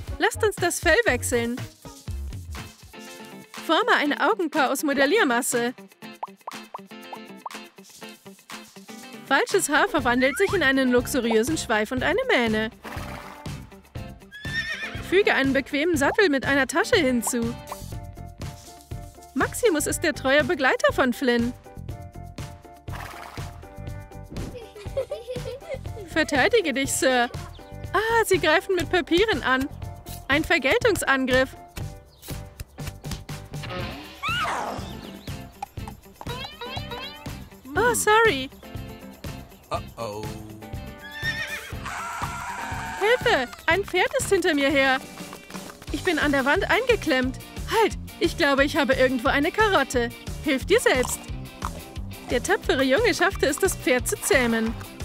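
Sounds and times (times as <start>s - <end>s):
background music: 0.0s - 55.0s
horse whinnying: 12.8s - 13.5s, 14.3s - 15.1s, 22.9s - 23.4s, 33.7s - 35.0s, 40.9s - 43.6s.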